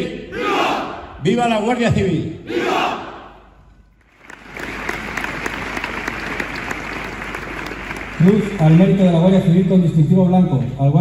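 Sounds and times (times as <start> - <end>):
people applauding: 4.0 - 9.7.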